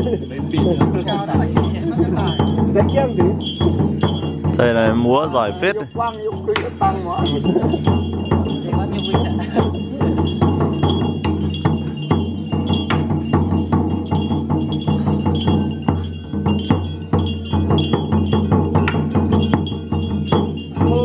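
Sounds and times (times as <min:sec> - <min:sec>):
bells and metal percussion: 0:00.0 - 0:21.0
continuous ringing: 0:00.0 - 0:21.0.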